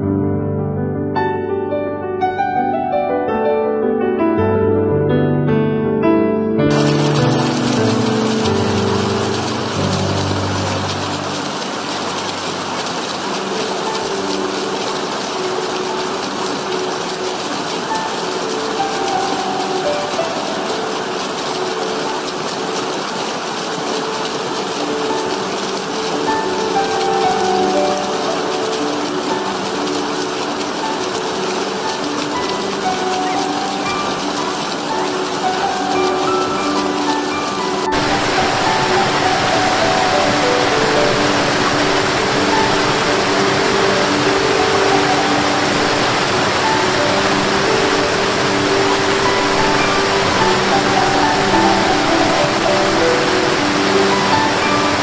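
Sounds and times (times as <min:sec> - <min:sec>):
soft keyboard music: 0:00.0 - 0:55.0
stream over rocks: 0:06.7 - 0:55.0.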